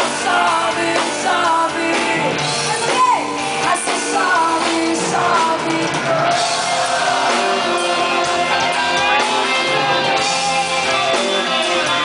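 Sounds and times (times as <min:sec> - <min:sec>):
woman singing: 0:00.0 - 0:09.1
live rock band playing: 0:00.0 - 0:12.0.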